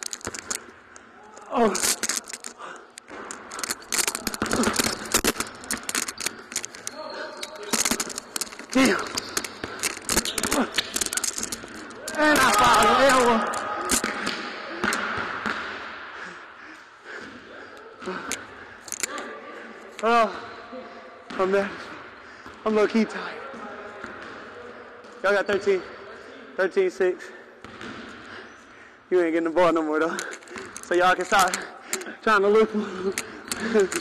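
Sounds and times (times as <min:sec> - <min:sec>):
shoe squeak: 0:03.4 - 0:13.1.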